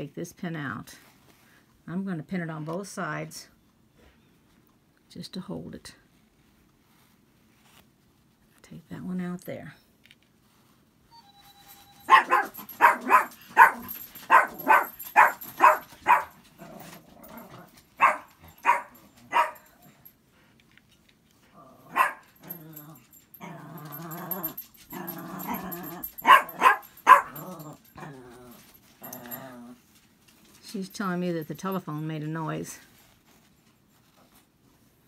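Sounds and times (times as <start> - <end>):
dog barking: 12.0 - 16.4, 18.0 - 19.8, 21.9 - 22.6, 24.3 - 27.6.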